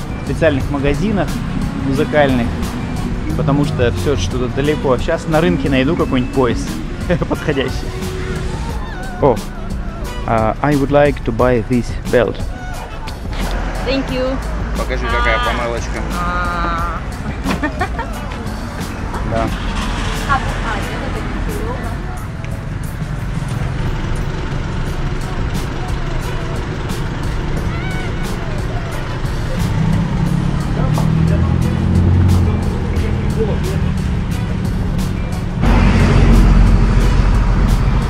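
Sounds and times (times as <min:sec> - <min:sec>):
music with steady beat: 0:00.0 - 0:38.0
street traffic noise: 0:00.0 - 0:38.0.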